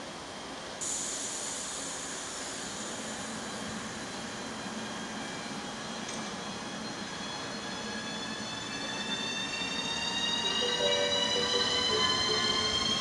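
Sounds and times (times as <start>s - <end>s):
electric locomotive whining: 1.2s - 13.0s.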